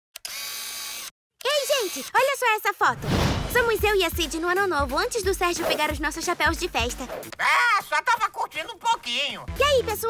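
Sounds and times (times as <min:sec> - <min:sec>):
girl speaking: 0:01.4 - 0:07.0, 0:09.6 - 0:10.0.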